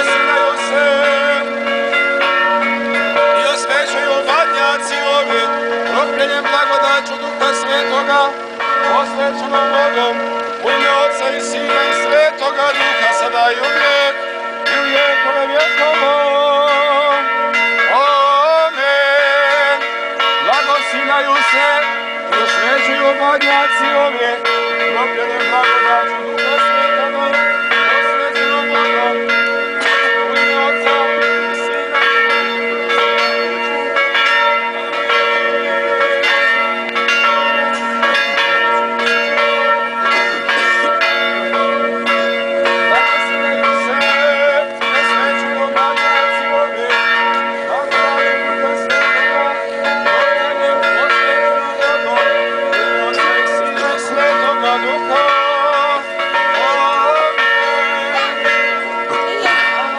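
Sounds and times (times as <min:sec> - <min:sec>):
church bells ringing: 0:00.0 - 0:59.9.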